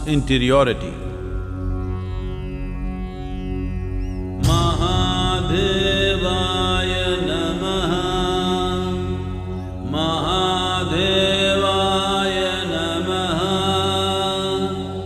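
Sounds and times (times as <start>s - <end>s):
low drone: 0.0s - 15.0s
person chanting: 4.4s - 15.0s.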